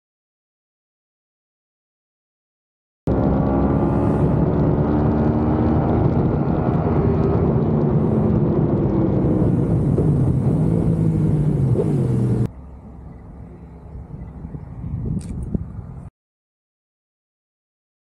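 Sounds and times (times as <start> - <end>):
wind noise: 3.1 - 12.5, 13.4 - 16.1
road noise: 3.1 - 16.1.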